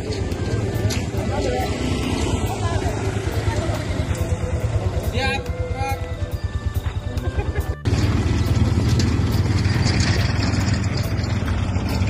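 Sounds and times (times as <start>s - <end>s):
motorcycle engines running: 0.0s - 12.0s.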